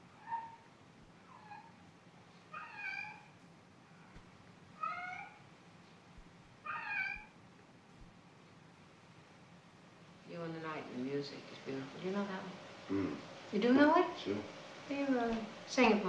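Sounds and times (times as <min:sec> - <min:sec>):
cat meowing: 0:02.5 - 0:03.3, 0:04.8 - 0:05.4, 0:06.6 - 0:07.3.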